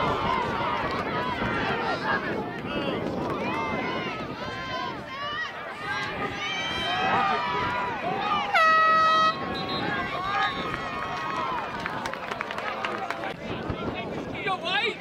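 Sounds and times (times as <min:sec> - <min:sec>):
people shouting and calling: 0:00.0 - 0:11.8.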